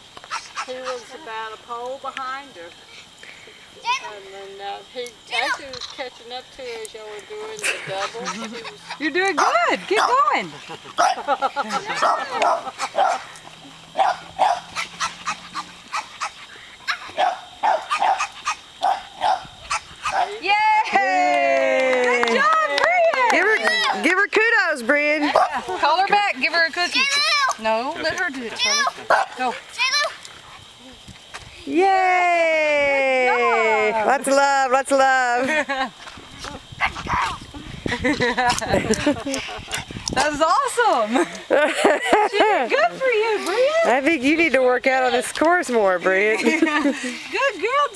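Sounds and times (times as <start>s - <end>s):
dog barking: 8.0s - 10.3s, 11.0s - 13.3s, 14.0s - 20.4s, 29.1s - 29.4s.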